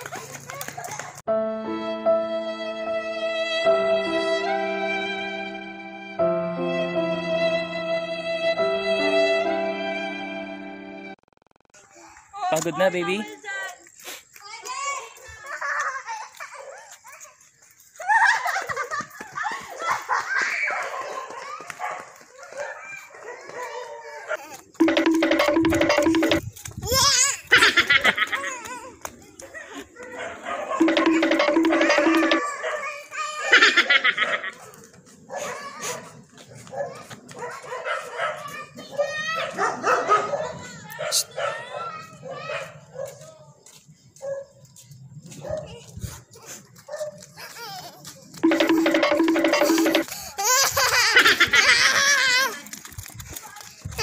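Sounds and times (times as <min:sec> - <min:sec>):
running footsteps: 0:00.0 - 0:01.2, 0:13.3 - 0:30.2, 0:34.4 - 0:38.6, 0:43.0 - 0:54.0
children giggling and squealing: 0:14.9 - 0:21.8, 0:26.9 - 0:30.2, 0:32.5 - 0:34.8, 0:45.8 - 0:48.4, 0:49.4 - 0:52.8
dog barking and yipping: 0:30.1 - 0:30.8, 0:36.6 - 0:43.2
children's voices: 0:35.4 - 0:39.7, 0:40.4 - 0:42.9.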